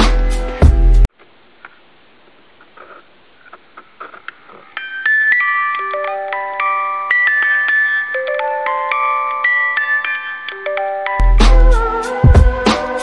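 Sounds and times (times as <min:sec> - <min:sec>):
music box melody: 0:04.8 - 0:11.4.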